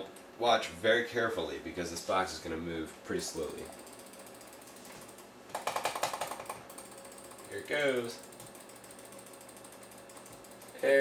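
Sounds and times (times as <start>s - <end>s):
rapid mechanical clicking: 3.3s - 11.0s.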